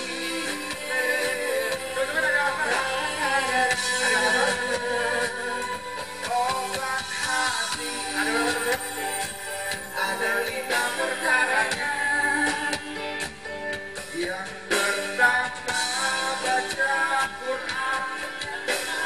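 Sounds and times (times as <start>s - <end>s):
live band playing: 0.0s - 19.0s
person singing: 0.0s - 19.0s.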